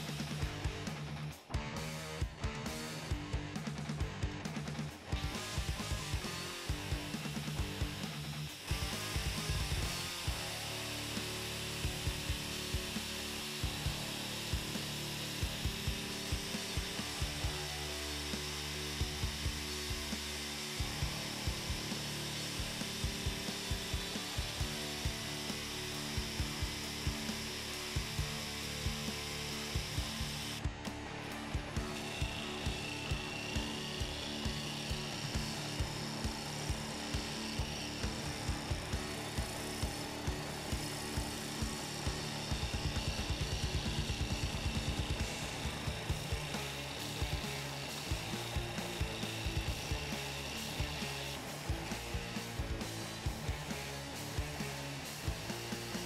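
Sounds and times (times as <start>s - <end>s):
drill press turning wood: 6.7s - 30.6s, 31.2s - 51.4s.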